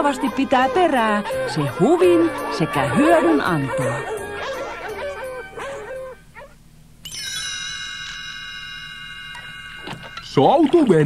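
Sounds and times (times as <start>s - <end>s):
dogs yelping and howling: 0.0s - 6.6s.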